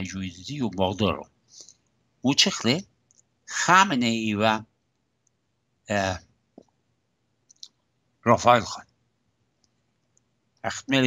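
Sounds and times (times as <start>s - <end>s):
man speaking over video call: 0.0s - 1.2s, 2.2s - 2.8s, 3.5s - 4.6s, 5.9s - 6.2s, 8.3s - 8.8s, 10.6s - 11.0s.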